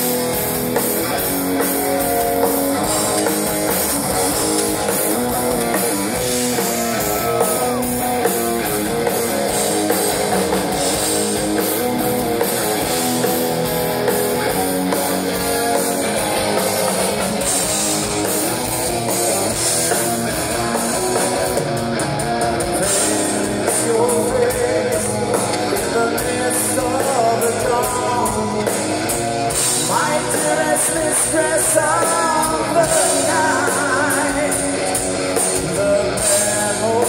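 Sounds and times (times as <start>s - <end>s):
live metal band playing: 0.0s - 37.0s.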